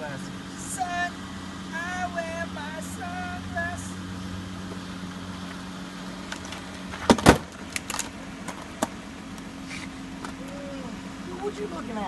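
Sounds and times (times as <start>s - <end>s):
vehicle idling hum: 0.0s - 12.0s
loud double thump: 7.1s - 7.5s.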